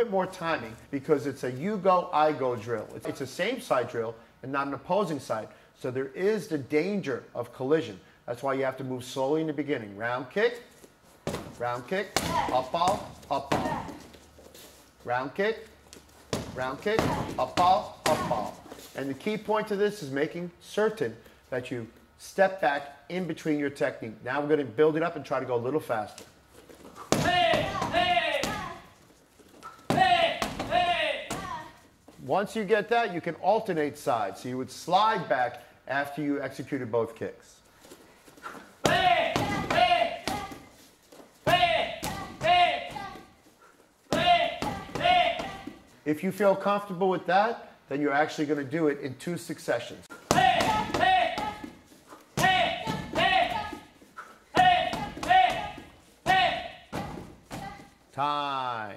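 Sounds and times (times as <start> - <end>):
kicks slapping heavy bag: 12.2 - 14.0, 16.3 - 18.5, 50.3 - 51.7
person shouting: 12.2 - 14.0, 27.2 - 28.8, 29.9 - 31.7, 38.9 - 40.7, 41.5 - 43.2, 44.1 - 45.7, 50.3 - 51.7, 52.4 - 53.8, 54.6 - 56.8.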